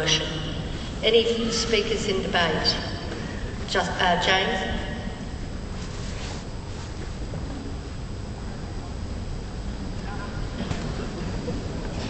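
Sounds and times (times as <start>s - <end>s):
crowded arena hall noise: 7.4s - 12.0s.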